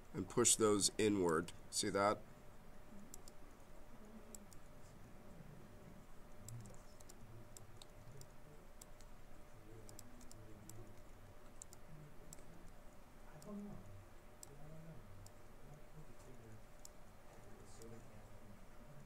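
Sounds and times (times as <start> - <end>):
keyboard and mouse clicking: 3.1 - 3.4, 6.4 - 9.1, 9.8 - 12.8.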